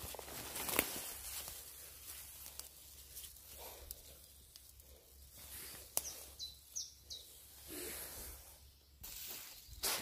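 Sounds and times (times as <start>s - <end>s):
soft rustle: 0.0s - 6.4s
high bird chirps: 6.0s - 7.5s.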